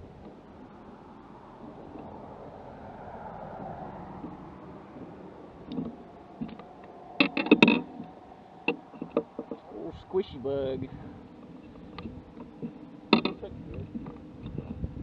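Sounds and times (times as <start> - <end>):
faint outdoor noise: 0.0 - 15.0.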